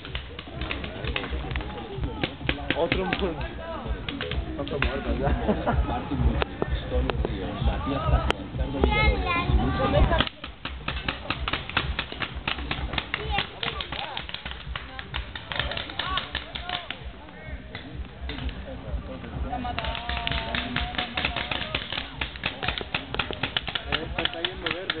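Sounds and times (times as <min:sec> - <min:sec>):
paintball markers firing: 0:00.0 - 0:03.5, 0:10.1 - 0:17.0, 0:19.6 - 0:25.0.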